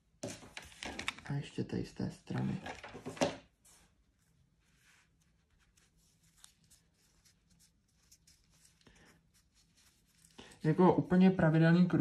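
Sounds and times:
fingers handling fabric: 0:02.4 - 0:10.4.

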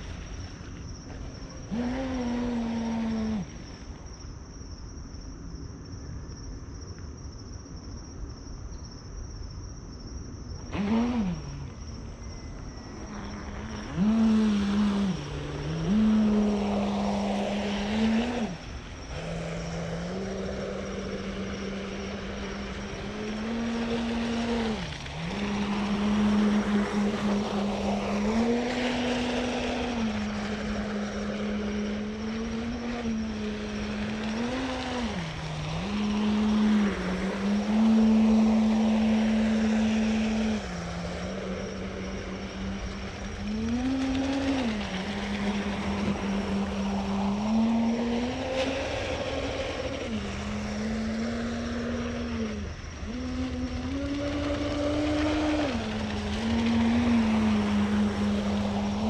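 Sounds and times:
model boat motor humming: 0:00.0 - 0:03.9, 0:10.6 - 0:59.0.

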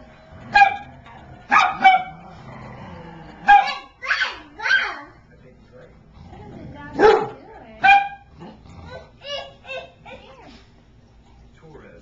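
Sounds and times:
dog barking high-pitched: 0:00.5 - 0:00.9, 0:01.5 - 0:02.2, 0:03.4 - 0:05.0, 0:07.0 - 0:08.3.

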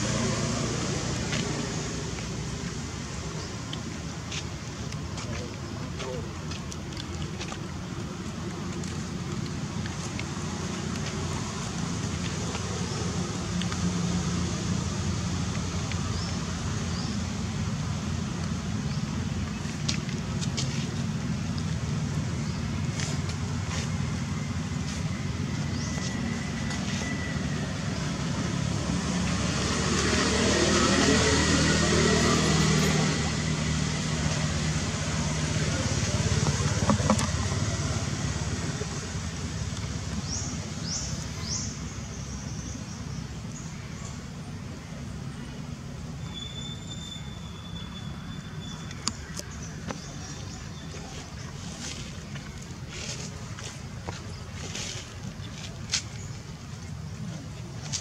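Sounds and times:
motor vehicle passing by: 0:00.0 - 0:04.3, 0:08.8 - 0:44.5
traffic background: 0:00.0 - 0:58.0.

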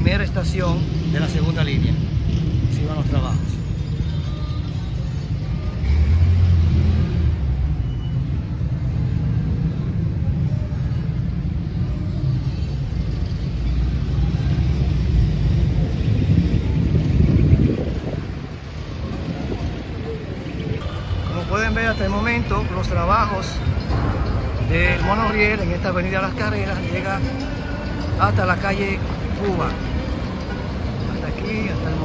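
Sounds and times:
cars passing: 0:00.0 - 0:32.0
vehicle engines rumbling: 0:00.0 - 0:32.0.

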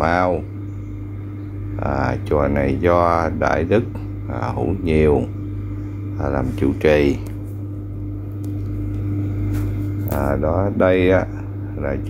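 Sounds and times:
low mechanical hum with high tone: 0:00.0 - 0:12.0.

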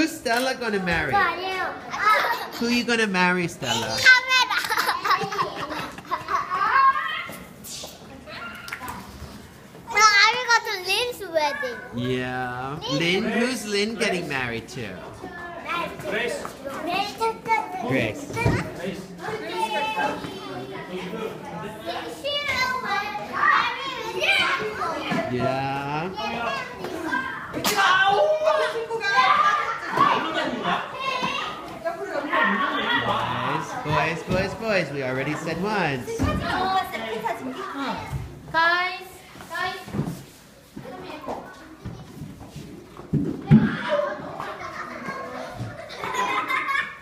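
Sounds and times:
girls chattering and playing: 0:00.0 - 0:47.0
children calling out: 0:03.8 - 0:09.1, 0:09.9 - 0:12.0.

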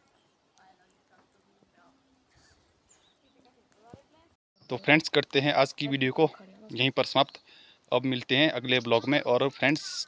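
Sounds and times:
distant bird chirps: 0:00.0 - 0:03.6, 0:04.6 - 0:07.8.

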